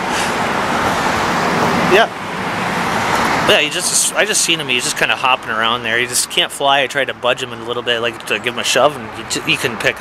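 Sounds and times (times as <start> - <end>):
road traffic rushing past: 0.0 - 10.0.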